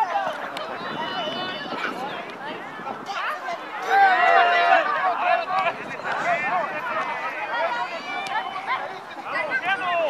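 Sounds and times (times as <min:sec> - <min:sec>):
voices shouting and calling out: 0:00.0 - 0:10.0.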